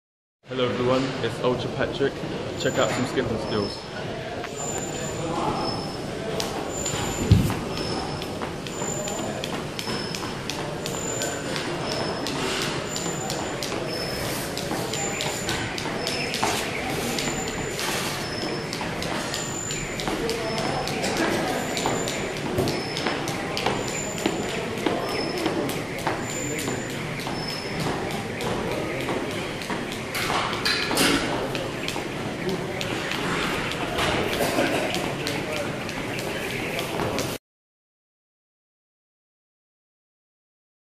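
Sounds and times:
jump rope slapping floor: 6.3 - 37.4
loud thump: 7.2 - 7.6.

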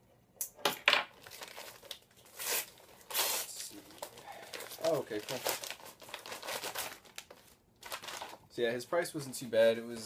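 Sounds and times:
packaging crinkling: 1.2 - 8.5.

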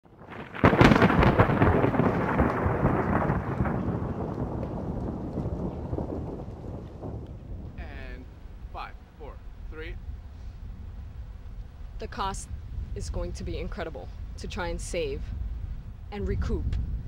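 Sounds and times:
thunderclap crack: 0.0 - 8.9
rolling thunder rumble: 0.0 - 17.0.

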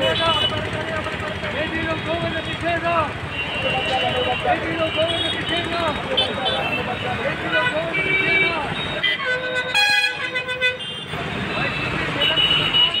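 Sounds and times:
voices: 0.0 - 9.3
road traffic: 0.0 - 13.0
vehicle horn honking: 3.3 - 13.0.

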